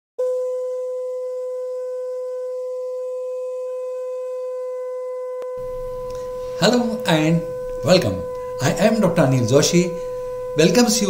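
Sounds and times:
held mid-pitched tone: 0.2s - 11.0s.

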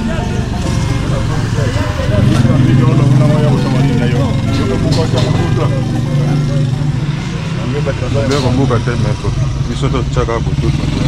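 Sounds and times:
people's voices: 0.0s - 11.0s
vehicle engine running: 0.0s - 11.0s.

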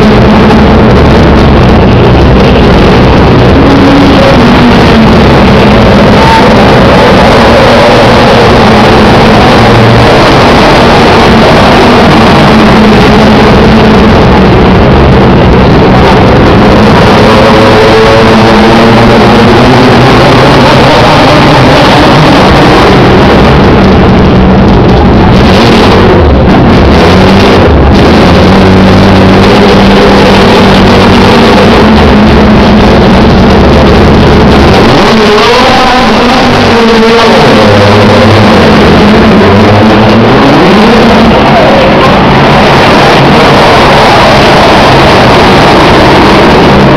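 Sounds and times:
racing car engines passing: 0.0s - 46.9s.

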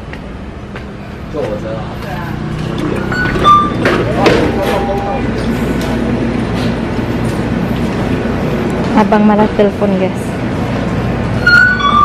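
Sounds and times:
low traffic hum: 0.0s - 12.0s
electronic door chime tones: 3.1s - 3.8s.

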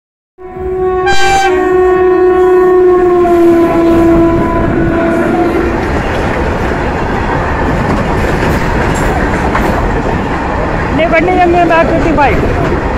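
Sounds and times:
locomotive horn blast: 0.4s - 5.9s
freight train rumbling past: 0.4s - 12.9s.

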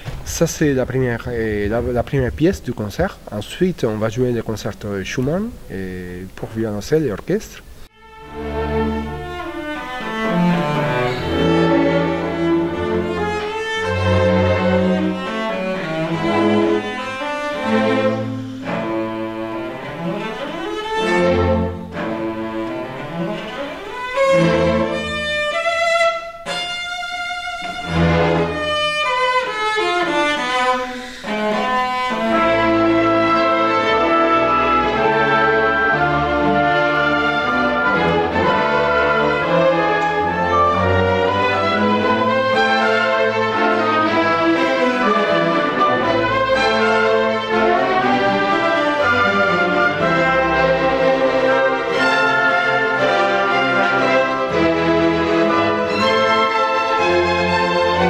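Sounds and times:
solo cello: 7.8s - 58.0s
symphony orchestra playing: 7.9s - 58.0s.

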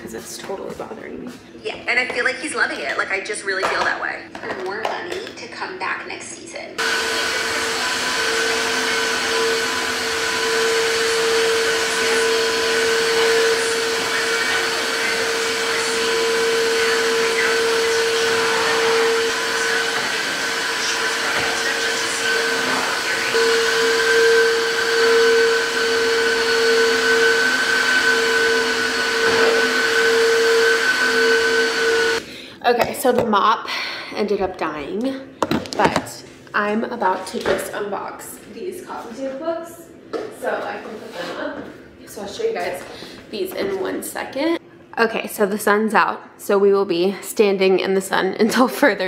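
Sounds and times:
suction rushing: 6.8s - 32.2s
floor washer motor humming: 6.8s - 32.4s.

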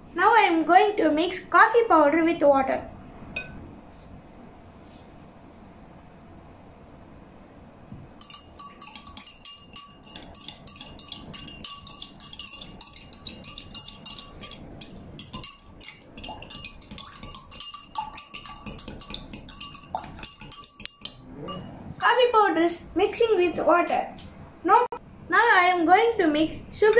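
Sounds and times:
spoon clinking in glass: 8.2s - 22.1s.

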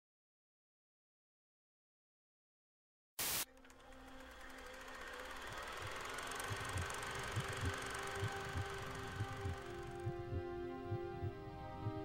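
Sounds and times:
wash of noise with held tones: 3.2s - 12.0s.

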